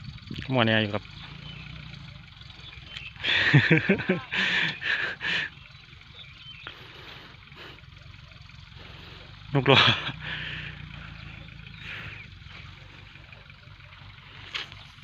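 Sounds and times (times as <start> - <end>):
tractor engine droning: 0.0 - 15.0
man laughing: 3.2 - 5.6, 9.5 - 10.8.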